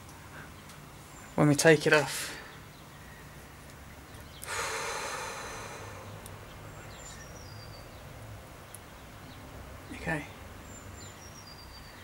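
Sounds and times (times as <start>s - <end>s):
person exhaling: 4.4s - 6.2s.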